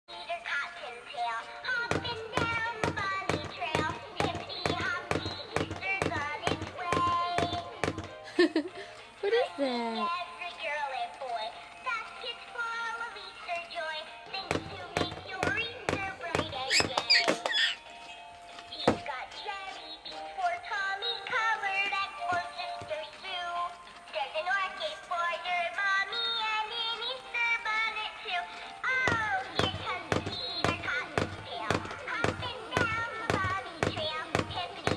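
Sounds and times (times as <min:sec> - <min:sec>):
toy singing through small speaker: 0:00.1 - 0:08.0, 0:09.9 - 0:17.8, 0:18.7 - 0:34.9
toy voice singing: 0:14.4 - 0:17.8.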